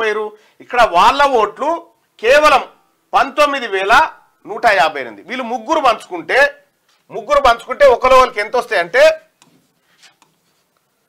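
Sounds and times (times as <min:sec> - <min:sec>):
man speaking: 0:00.0 - 0:09.4.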